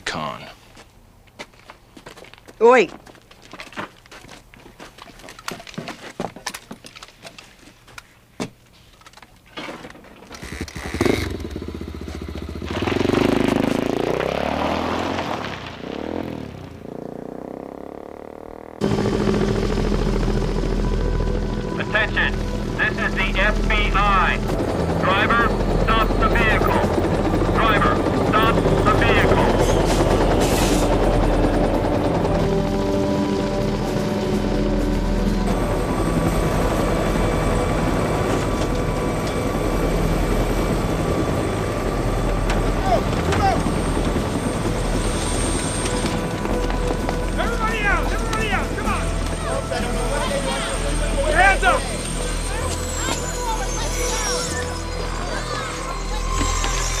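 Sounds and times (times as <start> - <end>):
helicopter rotor and engine: 10.3 - 14.8, 18.8 - 57.0
motorcycle engine revving: 10.4 - 20.3.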